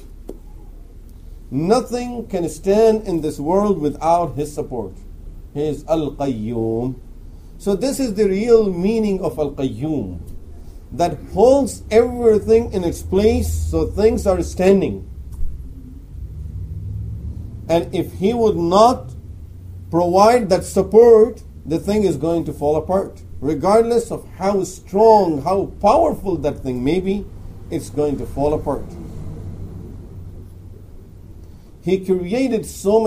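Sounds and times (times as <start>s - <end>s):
low background rumble: 0.0s - 33.0s
low room hum: 0.0s - 33.0s.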